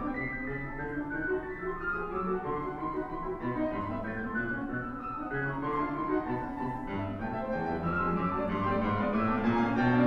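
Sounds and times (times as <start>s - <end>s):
solo piano playing: 0.0s - 10.0s.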